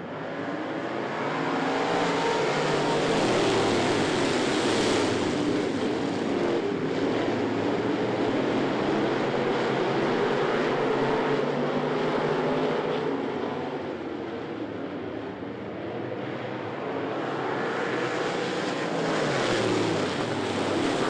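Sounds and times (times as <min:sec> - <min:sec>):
race car engines: 0:00.0 - 0:21.0.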